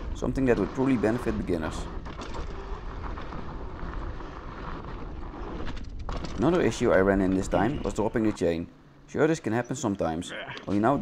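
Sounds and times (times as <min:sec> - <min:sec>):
tyres rumbling on dirt: 0:00.0 - 0:08.7.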